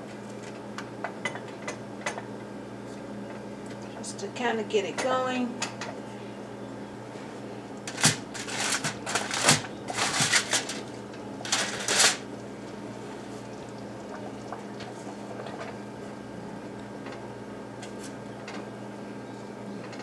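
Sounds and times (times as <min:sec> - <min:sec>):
faint steady hum: 0:00.0 - 0:20.0
aluminium foil crinkling: 0:07.8 - 0:12.3.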